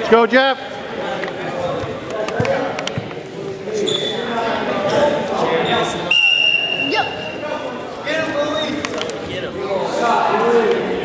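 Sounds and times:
referee's whistle blast: 6.1s - 7.4s.

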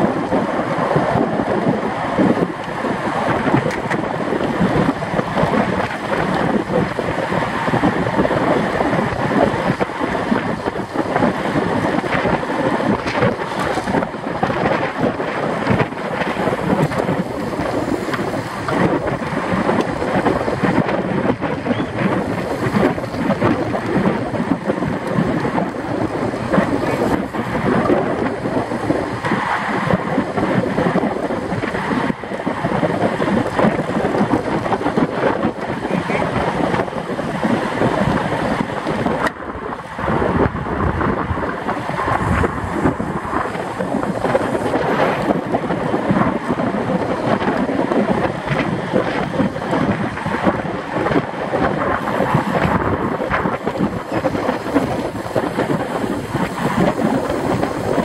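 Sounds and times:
wind rushing over microphone: 0.0s - 58.0s.

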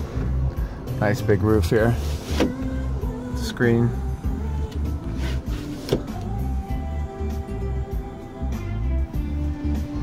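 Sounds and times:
music with steady bass beat: 1.8s - 10.0s.

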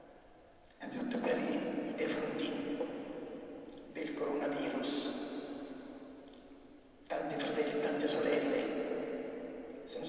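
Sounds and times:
man speaking: 0.8s - 2.8s, 3.9s - 5.2s, 7.1s - 8.8s.

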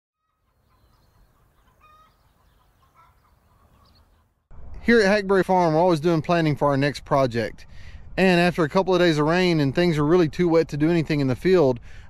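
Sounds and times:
faint chickens clucking: 0.2s - 4.4s
low steady rumble: 4.5s - 12.0s.

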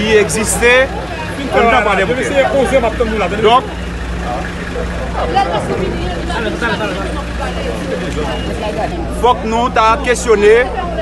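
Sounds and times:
people talking outdoors: 0.0s - 11.0s.

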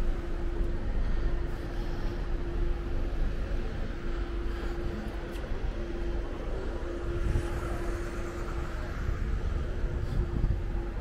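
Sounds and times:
continuous humming tone: 0.0s - 11.0s
low traffic rumble: 0.0s - 11.0s.

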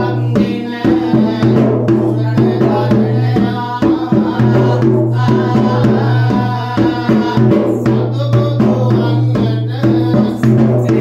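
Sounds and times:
hand drum rhythm: 0.0s - 11.0s.

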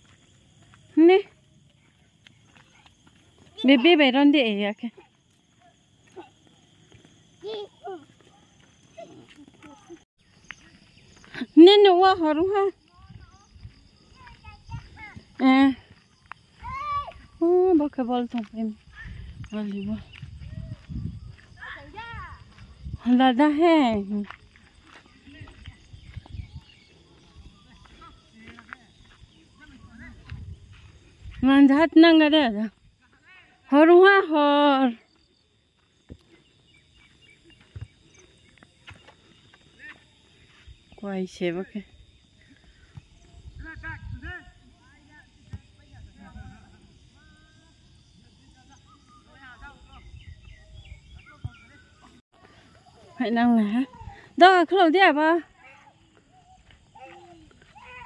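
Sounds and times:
wind rumble on microphone: 18.8s - 23.3s, 25.3s - 28.3s, 29.0s - 32.0s, 43.0s - 47.1s, 49.6s - 52.2s.

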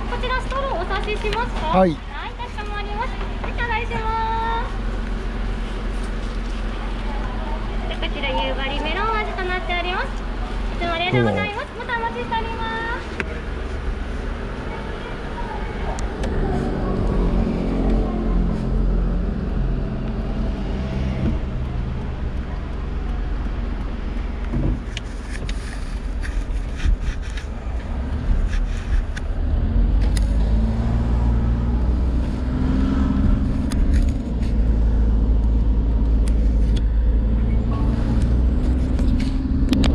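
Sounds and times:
car engine: 0.0s - 39.9s.

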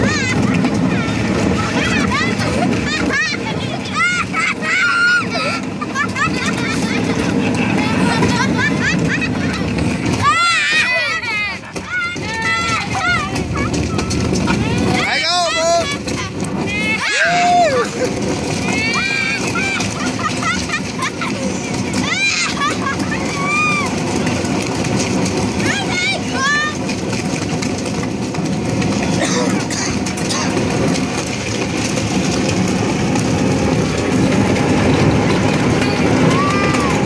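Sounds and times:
plastic hull scraping on asphalt: 0.0s - 37.0s.

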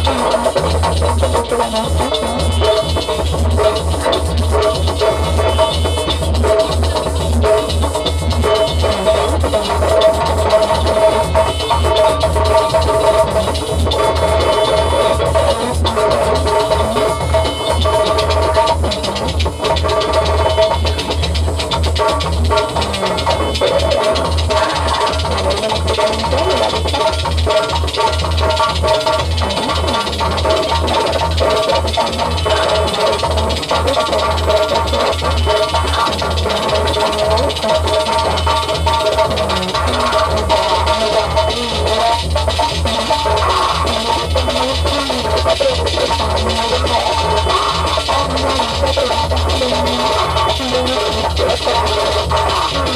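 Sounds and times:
pulsing bass beat: 0.0s - 52.9s
sustained synth tones: 0.0s - 52.9s.

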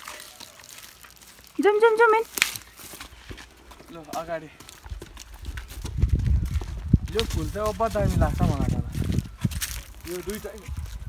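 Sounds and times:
footsteps crunching on path: 0.0s - 11.0s.

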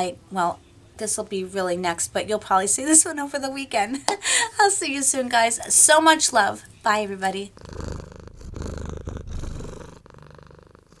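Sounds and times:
low rumbling purr: 7.4s - 11.0s.

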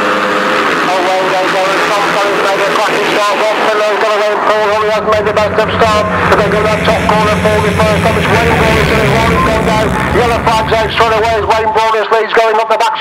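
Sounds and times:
motorcycles racing at full throttle: 0.0s - 12.1s.

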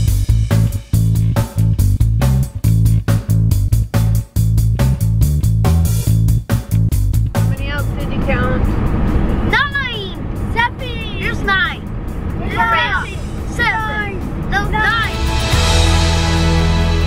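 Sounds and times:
van cabin rumble on road: 7.1s - 15.2s
children calling out: 12.4s - 15.1s.

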